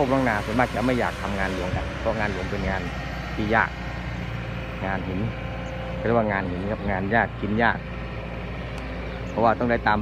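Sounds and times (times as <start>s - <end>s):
engine running with low hum: 0.0s - 10.0s.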